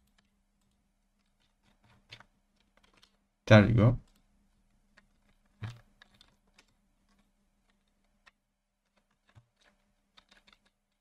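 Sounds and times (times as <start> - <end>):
keyboard clicks: 4.9 - 11.0.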